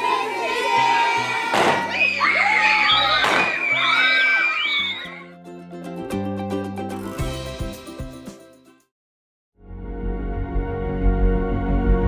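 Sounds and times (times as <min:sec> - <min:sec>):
children shrieking and cheering: 0:00.0 - 0:05.4
background music: 0:00.0 - 0:08.9, 0:09.6 - 0:12.0.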